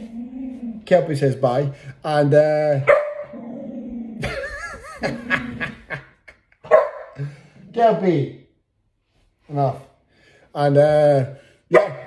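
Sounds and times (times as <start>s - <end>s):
dog growling and whining: 0.0s - 0.9s, 3.2s - 4.3s.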